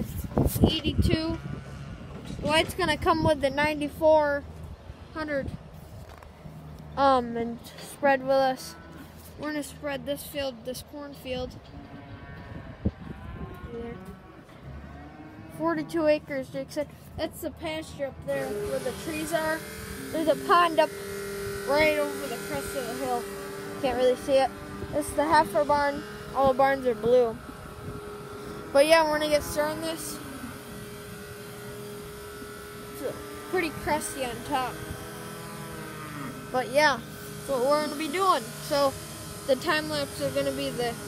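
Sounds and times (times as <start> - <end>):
engine humming: 0.0 - 41.0
cattle mooing: 11.7 - 16.0, 18.4 - 38.6.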